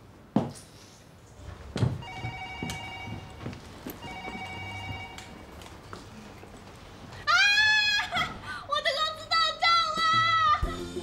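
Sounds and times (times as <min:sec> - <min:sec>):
telephone ringing: 0:02.0 - 0:05.6.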